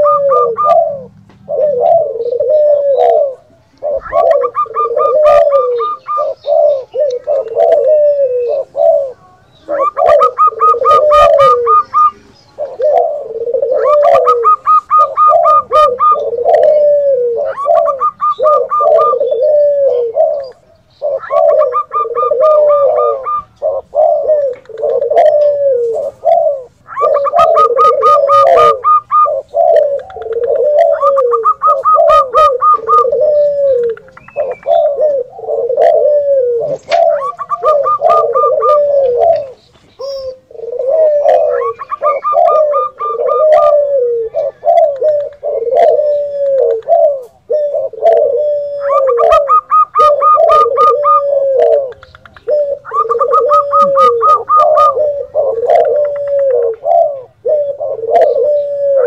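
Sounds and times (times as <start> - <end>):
low dove coos: 0.0 - 59.0.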